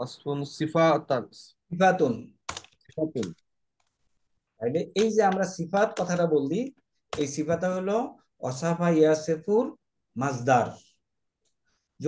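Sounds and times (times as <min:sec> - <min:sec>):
keyboard typing: 0:02.4 - 0:04.2, 0:04.8 - 0:07.7
man speaking: 0:03.0 - 0:03.4, 0:04.6 - 0:10.9.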